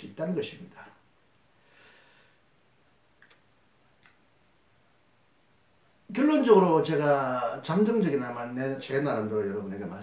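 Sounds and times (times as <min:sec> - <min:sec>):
faint clicks: 0:03.2 - 0:04.2.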